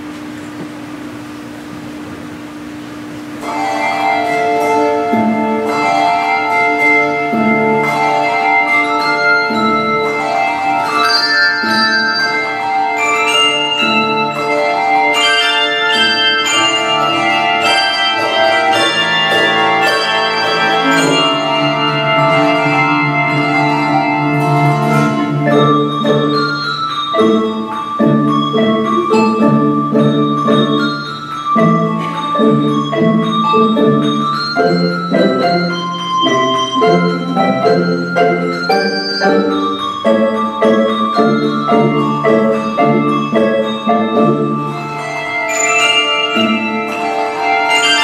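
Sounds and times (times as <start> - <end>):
handbell choir playing: 3.4 - 48.0.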